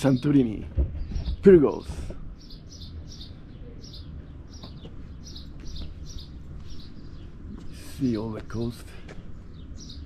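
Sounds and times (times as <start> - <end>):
small bird chirping: 0.0 - 8.7, 9.4 - 10.0.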